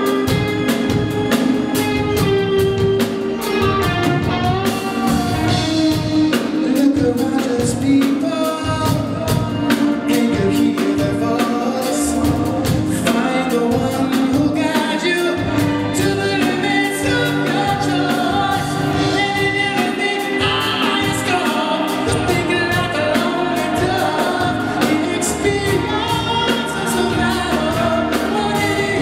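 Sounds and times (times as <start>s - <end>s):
drum kit: 0.0s - 29.0s
electric bass guitar: 0.0s - 29.0s
man singing into a microphone: 4.6s - 29.0s.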